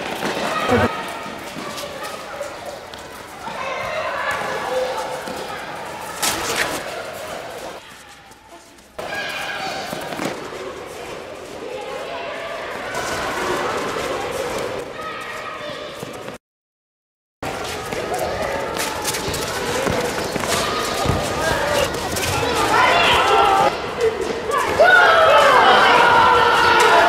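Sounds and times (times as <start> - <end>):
children shouting: 0.0 - 8.2, 9.0 - 16.2, 17.6 - 27.0.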